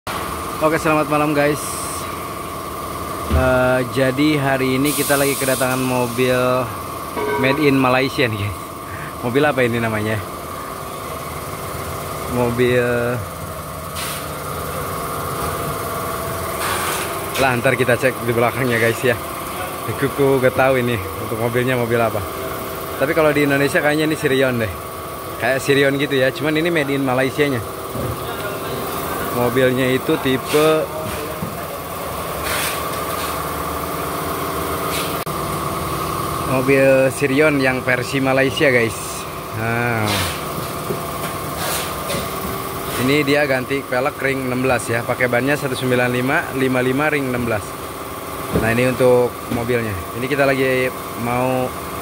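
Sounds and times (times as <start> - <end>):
engine idling hum: 0.1 - 52.0.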